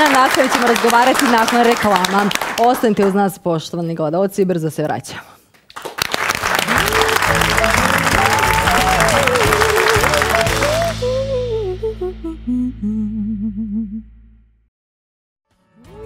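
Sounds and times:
studio audience applause: 0:00.0 - 0:03.2, 0:05.7 - 0:11.1.

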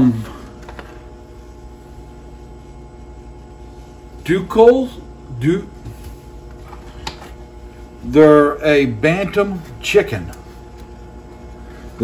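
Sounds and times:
incubator fan motor humming: 0:00.0 - 0:12.0.

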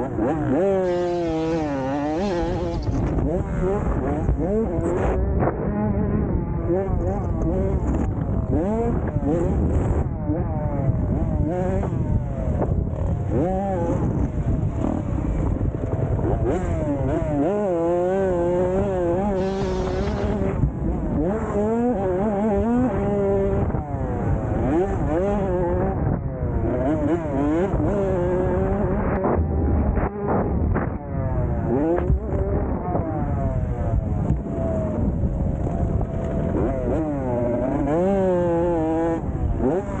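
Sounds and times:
dirt bike engines revving: 0:00.0 - 0:40.0
wind rumbling on microphone: 0:00.0 - 0:40.0.

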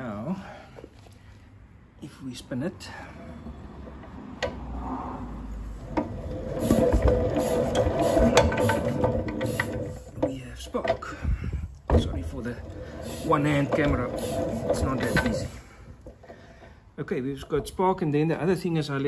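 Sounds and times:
engine clicking and rattling: 0:05.7 - 0:11.1, 0:11.8 - 0:16.5.

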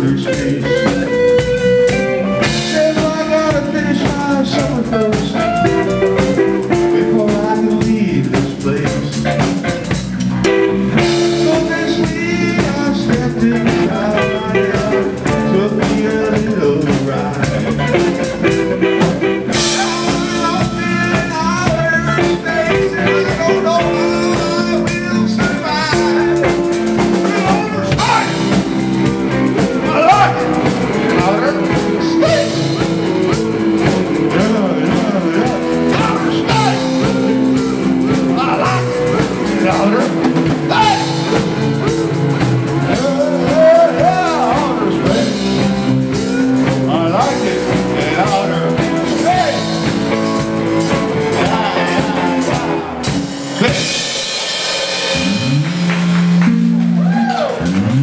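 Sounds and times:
bending electric guitar notes: 0:00.0 - 0:58.0
live band playing blues: 0:00.0 - 0:58.0.

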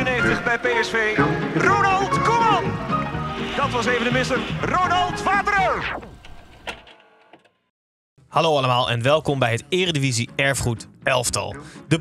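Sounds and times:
tape stopping pitch drop: 0:03.4 - 0:06.5.

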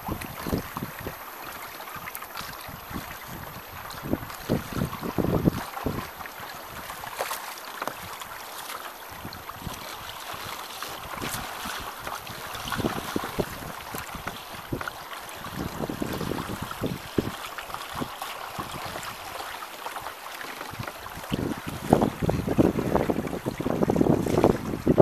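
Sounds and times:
wind buffeting microphone: 0:00.0 - 0:07.1, 0:09.1 - 0:19.3, 0:20.6 - 0:25.0
water splashing against boat: 0:00.0 - 0:25.0.

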